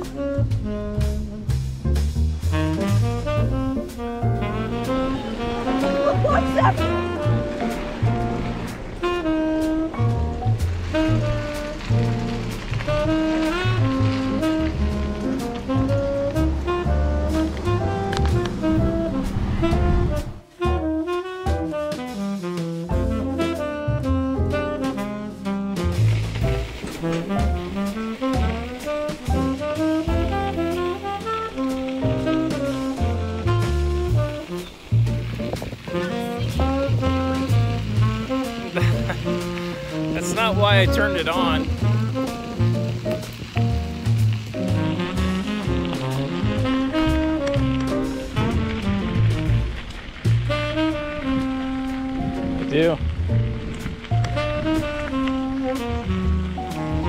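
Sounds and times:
instrumental tune with bass line: 0.0 - 57.0.

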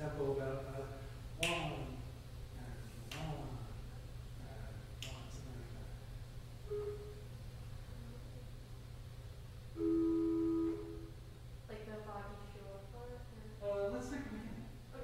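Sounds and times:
steady low hum: 0.0 - 15.0
pipe organ chord: 9.8 - 11.1.

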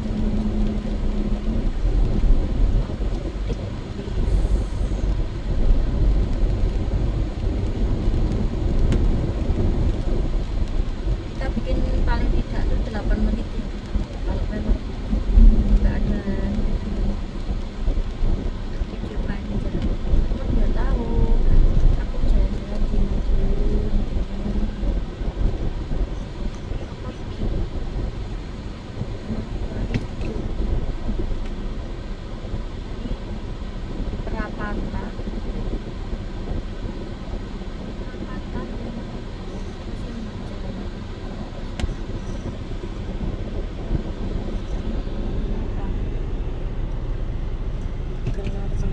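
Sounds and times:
car cabin rumble: 0.0 - 48.9.

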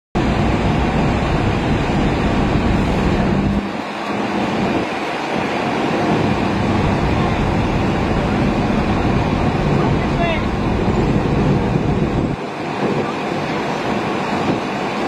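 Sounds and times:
vehicle rumble inside car: 0.2 - 15.0.

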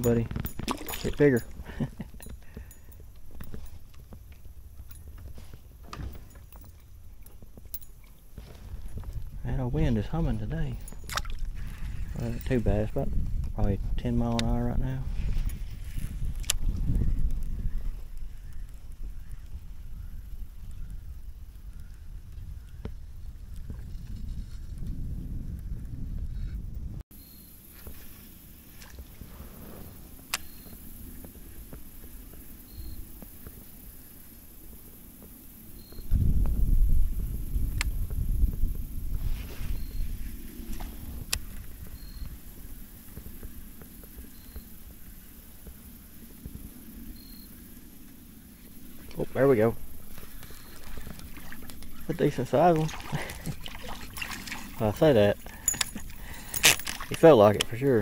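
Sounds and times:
wind buffeting microphone: 0.0 - 27.0, 27.9 - 58.0.

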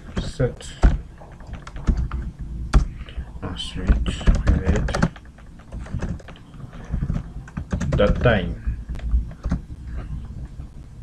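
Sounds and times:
typing on computer keyboard: 1.3 - 2.9, 3.9 - 8.4, 9.3 - 9.6.

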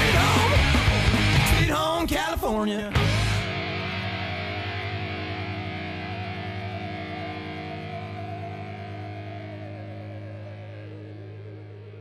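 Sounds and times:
distorted electric guitar chord: 0.0 - 1.7, 3.0 - 12.0.

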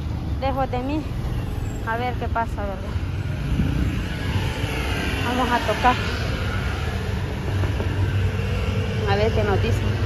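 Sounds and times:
street traffic rumble: 0.0 - 10.0.

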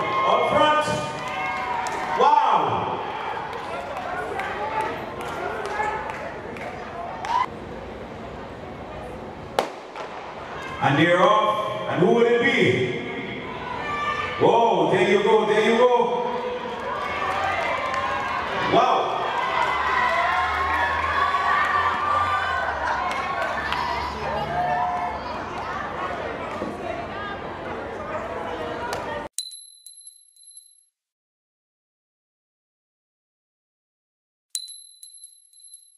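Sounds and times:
crowd noise: 0.0 - 29.3
outdoor crowd chatter: 13.0 - 14.4, 19.4 - 29.3
bright ding: 29.4 - 30.8, 34.6 - 35.9.

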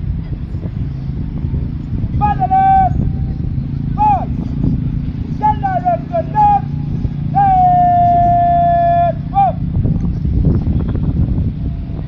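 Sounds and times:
drill commander shouting commands: 2.2 - 3.2, 4.0 - 4.4, 5.4 - 9.7.

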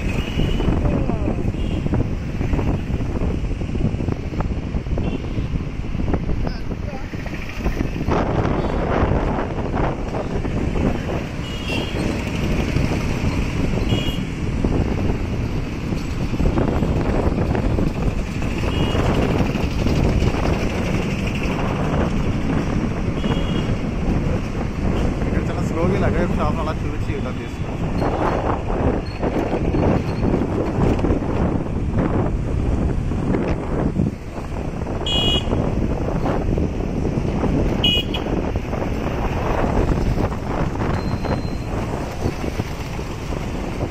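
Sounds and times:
traffic noise: 0.0 - 43.9
wind rumbling on microphone: 0.0 - 43.9.

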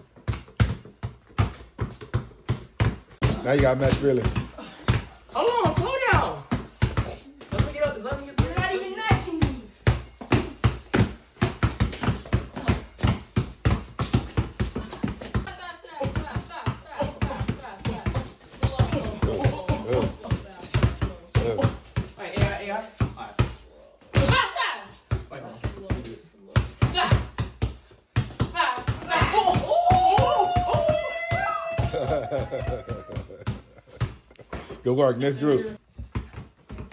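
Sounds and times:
basketballs bouncing on concrete: 0.0 - 36.9.

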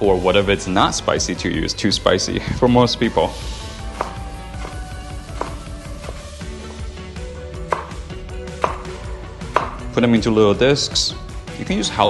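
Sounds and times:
knife chopping on wooden board: 3.9 - 6.3, 7.7 - 9.9.

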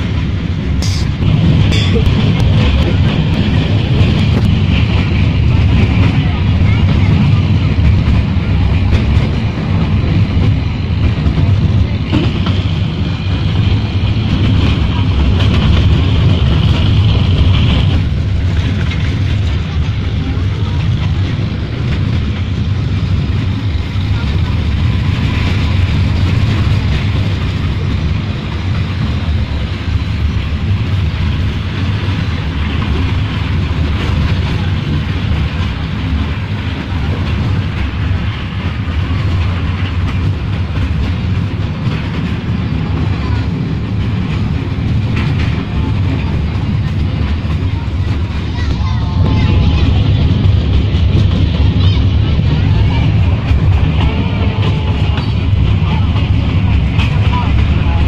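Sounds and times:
train rumbling on track: 0.0 - 58.0.

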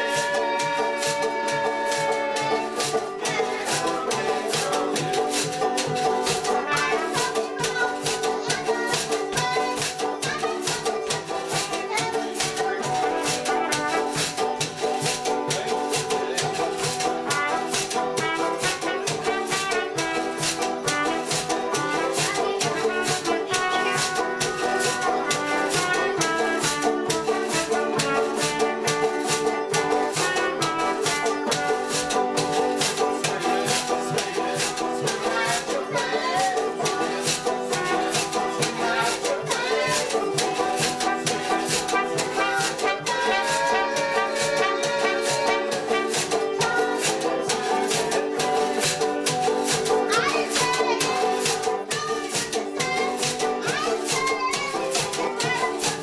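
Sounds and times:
rattling percussion beat: 0.0 - 56.0
strummed guitar: 0.0 - 56.0
trumpet: 0.0 - 56.0.

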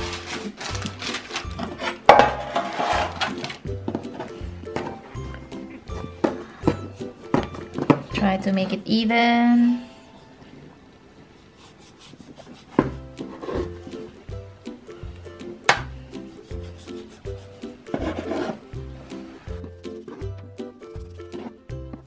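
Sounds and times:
knife sawing through dough: 11.4 - 13.8, 16.2 - 18.7.

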